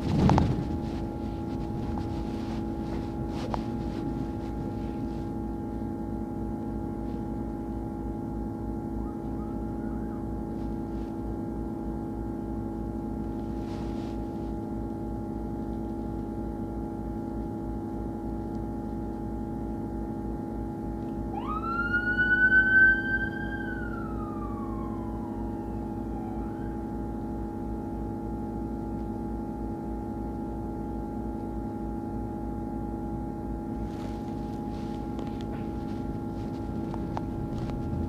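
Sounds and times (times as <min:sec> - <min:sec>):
bus engine hum: 0:00.0 - 0:38.0
siren wailing: 0:08.8 - 0:10.9, 0:21.3 - 0:27.9, 0:35.6 - 0:38.0.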